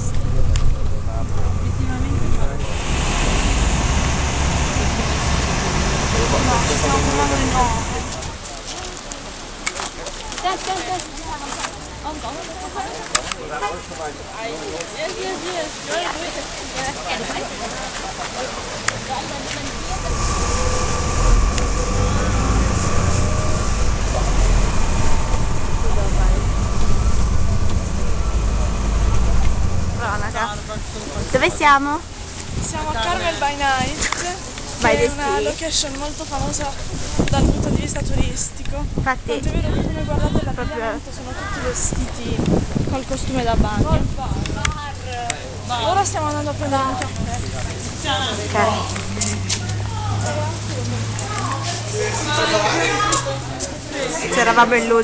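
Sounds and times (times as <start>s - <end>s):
wind rumble on microphone: 0.0s - 9.0s, 18.9s - 49.9s
ocean surf: 0.0s - 49.1s.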